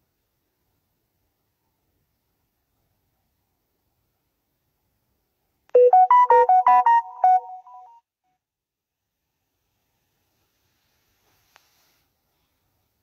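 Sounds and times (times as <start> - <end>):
short tune of quick notes: 5.8 - 8.0.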